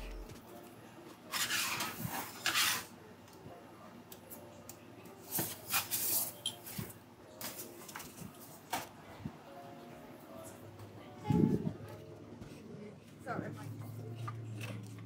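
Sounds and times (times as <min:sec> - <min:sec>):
spatula and pizza peel scraping: 0:01.3 - 0:02.9.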